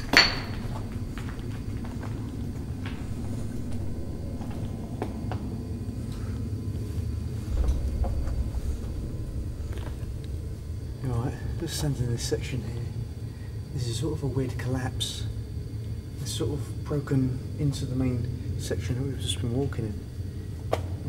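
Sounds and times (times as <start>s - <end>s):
footsteps on loose rubble: 0.0s - 5.5s
low rumbling handling noise: 0.0s - 21.0s.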